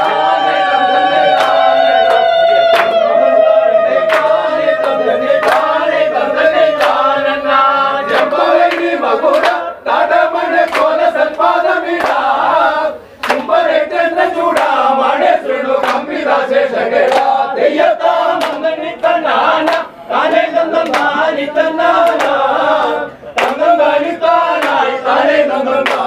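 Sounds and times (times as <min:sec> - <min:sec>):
hands clapping: 0:00.0 - 0:13.7, 0:14.5 - 0:16.4, 0:17.0 - 0:26.0
men singing a chant: 0:00.0 - 0:26.0.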